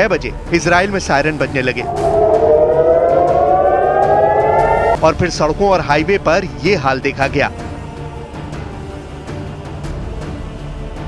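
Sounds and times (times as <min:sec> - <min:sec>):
air-raid siren wailing: 0:01.3 - 0:05.0.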